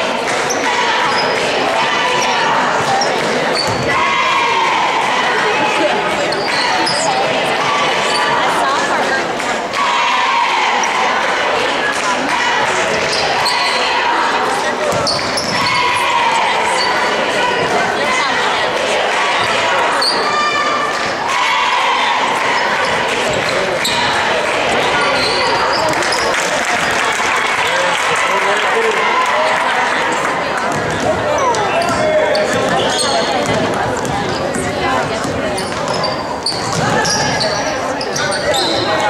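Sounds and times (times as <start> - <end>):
echoing voices: 0.0 - 39.0.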